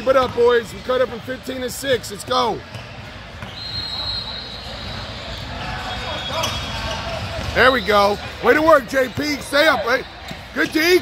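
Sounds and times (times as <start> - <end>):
background chatter: 0.0 - 11.0.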